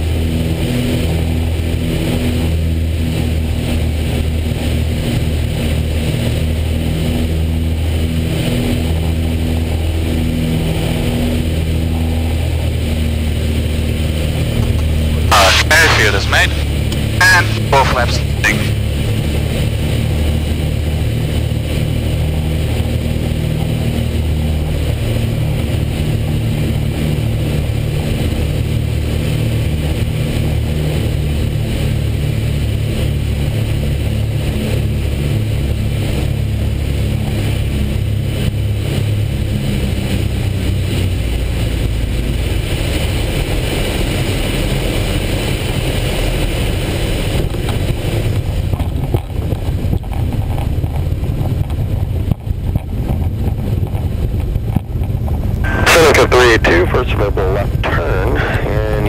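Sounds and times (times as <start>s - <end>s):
aircraft engines and propellers droning: 0.0s - 59.0s.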